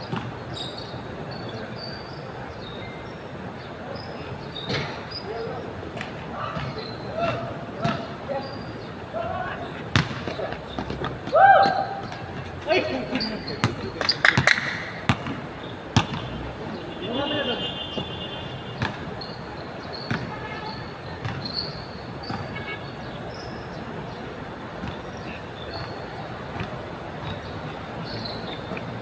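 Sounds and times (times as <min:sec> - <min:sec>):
players calling out: 0:03.8 - 0:23.6
basketball bouncing on hard court: 0:13.6 - 0:15.4, 0:16.0 - 0:16.3, 0:20.0 - 0:20.4, 0:21.2 - 0:22.6.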